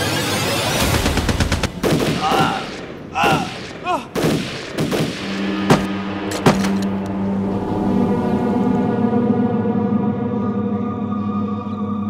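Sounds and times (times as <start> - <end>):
gunshots: 0.8 - 6.9.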